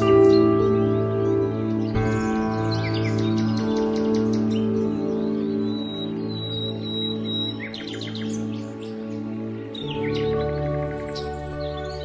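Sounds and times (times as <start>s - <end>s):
birds chirping: 0.0s - 12.0s
calm music with held chords: 0.0s - 12.0s.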